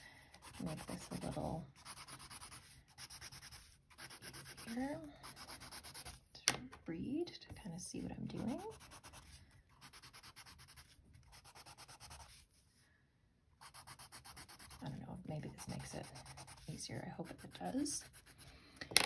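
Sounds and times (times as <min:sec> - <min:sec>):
pencil scratching on paper: 0:00.4 - 0:06.2, 0:08.0 - 0:12.4, 0:13.6 - 0:18.4.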